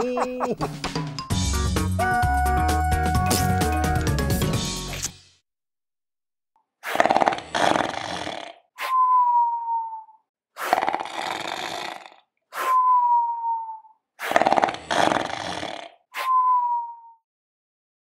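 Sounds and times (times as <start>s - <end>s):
cartoon rasping snore: 6.8s - 9.0s, 10.6s - 12.8s, 14.2s - 16.3s
thin falling whistle: 8.8s - 10.2s, 12.6s - 13.9s, 16.2s - 17.2s.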